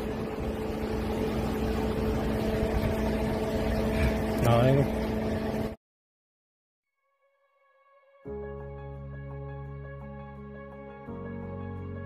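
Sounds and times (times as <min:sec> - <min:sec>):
wind rumbling on microphone: 0:00.0 - 0:05.7
low mechanical hum: 0:00.0 - 0:05.8.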